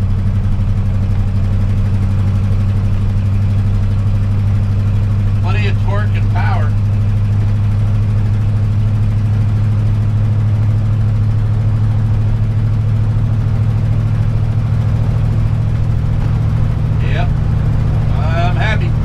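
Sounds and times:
motorhome engine and road drone: 0:00.0 - 0:19.0.

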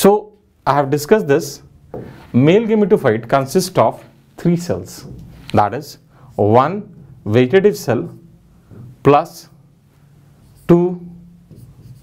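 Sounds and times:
person speaking: 0:00.0 - 0:09.7, 0:10.4 - 0:12.0
chalk scratching on blackboard: 0:10.4 - 0:12.0.

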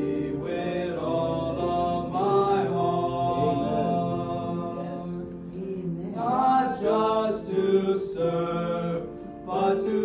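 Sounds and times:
boys singing in harmony: 0:00.0 - 0:10.0.

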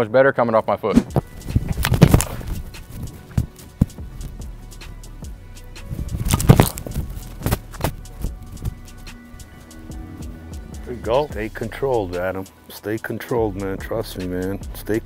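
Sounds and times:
football kicked thump: 0:00.9 - 0:02.5
music with clicking percussive beat: 0:01.0 - 0:12.3, 0:13.0 - 0:15.0.

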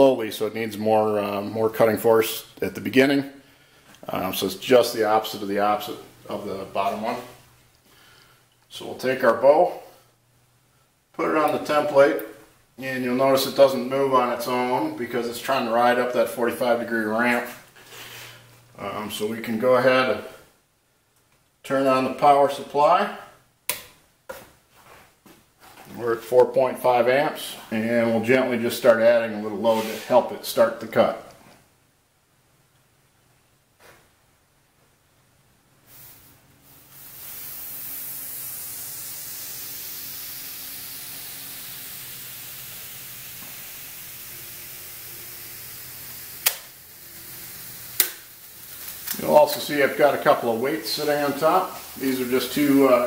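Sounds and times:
hot wire melting through foam: 0:36.7 - 0:53.0
sharp clicks: 0:46.4 - 0:46.8.

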